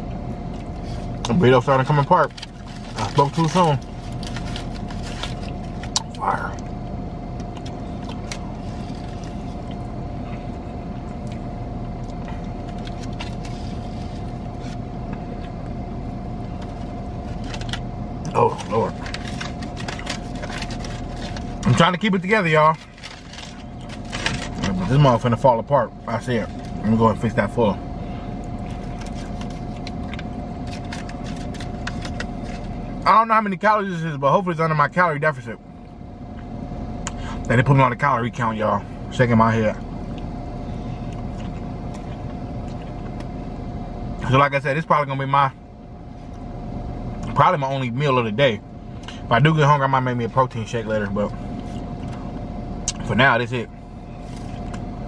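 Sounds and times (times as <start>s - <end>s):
steady low hum: 0.0s - 55.0s
foil wrapper crinkling: 2.2s - 6.0s, 18.6s - 21.8s, 22.7s - 25.0s, 28.7s - 32.8s.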